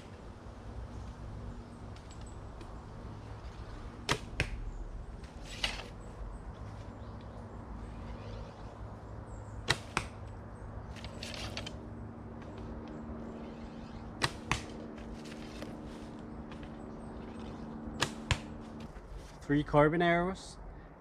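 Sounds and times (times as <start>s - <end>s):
arrow striking target: 4.0s - 4.6s, 9.6s - 10.2s, 14.0s - 14.8s, 17.9s - 18.6s.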